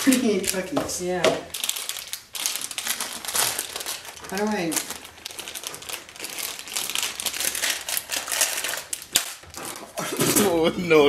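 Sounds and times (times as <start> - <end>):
plastic bag crinkling: 0.0 - 10.6.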